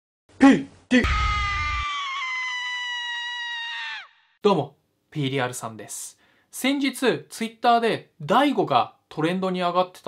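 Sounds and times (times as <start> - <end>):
high-pitched held cry: 1.0 - 4.2.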